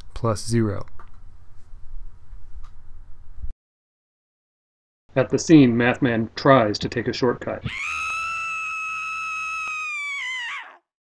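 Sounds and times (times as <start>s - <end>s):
high-pitched cartoon wailing cry: 7.7s - 10.9s.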